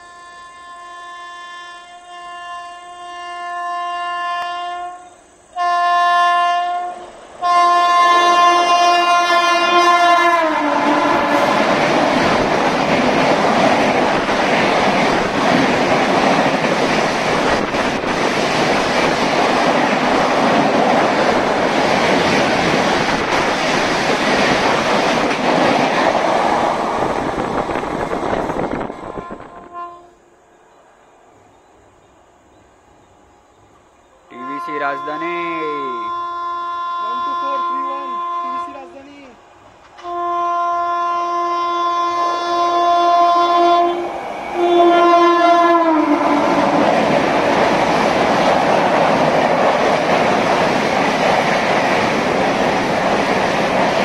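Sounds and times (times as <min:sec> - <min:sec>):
locomotive horn blasts: 0:00.0 - 0:11.6, 0:29.0 - 0:30.2, 0:34.4 - 0:39.0, 0:40.0 - 0:46.7
train coaches rushing and rattling: 0:07.2 - 0:29.6, 0:43.9 - 0:54.0.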